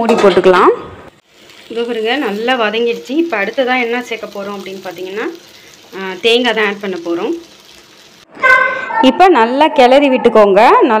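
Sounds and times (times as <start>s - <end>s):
food sizzling in a pot: 1.1s - 8.3s.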